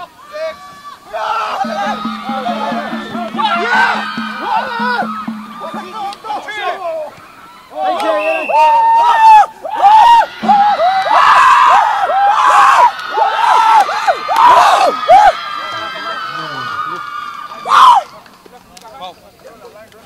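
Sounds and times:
loud shout: 0.0s - 18.2s
men chanting shouts: 1.0s - 6.5s.

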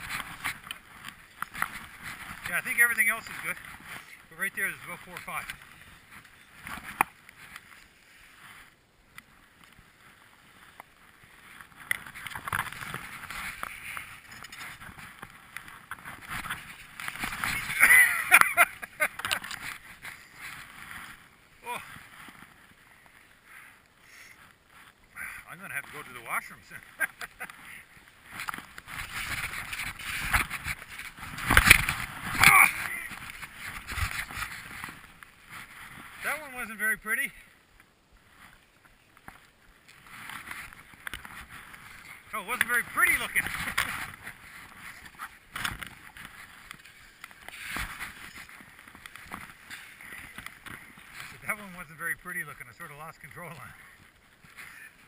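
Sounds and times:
skis scraping through snow: 0.0s - 55.0s
man speaking: 4.3s - 5.5s, 36.2s - 37.4s, 42.3s - 43.5s, 51.4s - 53.8s.

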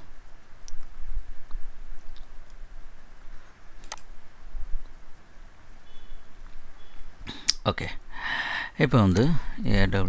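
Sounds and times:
computer mouse clicks: 3.8s - 4.1s.

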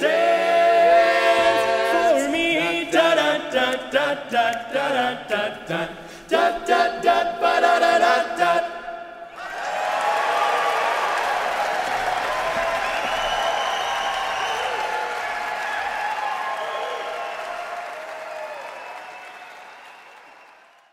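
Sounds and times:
audience applauding: 9.3s - 20.9s
scattered cheers: 9.3s - 20.9s.

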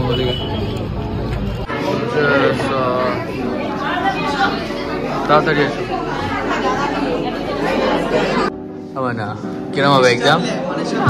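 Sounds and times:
students chattering: 0.0s - 11.0s.

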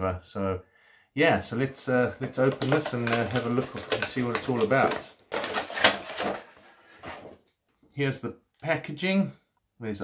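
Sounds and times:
cardboard box rustling and scraping: 2.8s - 7.4s.

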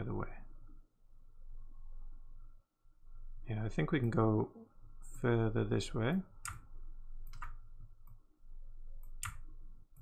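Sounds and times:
computer mouse clicking: 6.4s - 8.2s, 9.0s - 10.0s.

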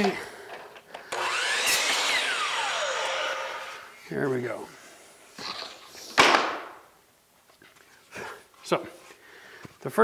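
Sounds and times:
miter saw motor whine: 1.1s - 3.9s.

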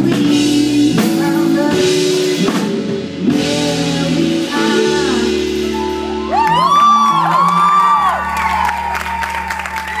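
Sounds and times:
audience whooping: 6.1s - 10.0s
audience clapping: 6.4s - 10.0s.

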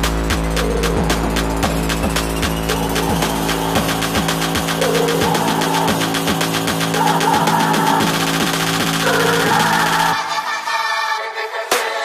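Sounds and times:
high synth melody: 0.0s - 10.3s
bass-boosted electronic dance music: 0.0s - 12.0s.

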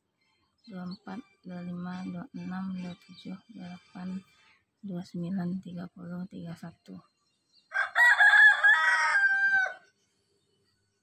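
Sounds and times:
rooster crowing: 7.7s - 9.9s.

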